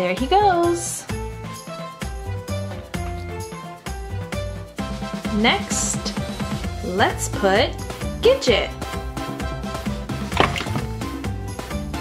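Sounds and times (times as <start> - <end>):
background music: 0.0 - 12.0
toy splashing into water: 10.2 - 11.1.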